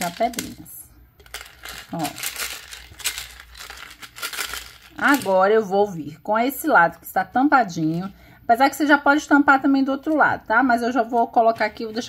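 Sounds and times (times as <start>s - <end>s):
pebbles rattling in plastic bottle: 0.0s - 5.4s
plastic bottle crinkling: 0.0s - 5.4s.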